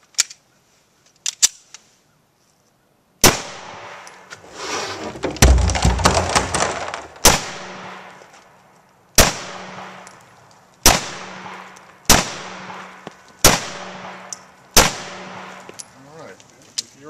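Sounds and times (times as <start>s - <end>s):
pistol shots with echo: 3.2s - 4.1s, 7.2s - 8.1s, 9.2s - 10.2s, 10.8s - 15.7s.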